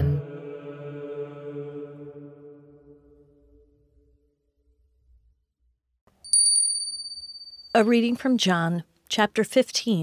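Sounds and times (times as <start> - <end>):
small high-pitched bell ringing: 6.2 - 8.2.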